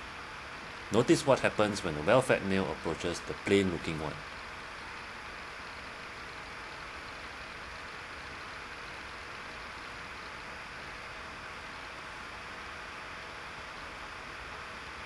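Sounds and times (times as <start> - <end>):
steady hiss: 0.0 - 15.0.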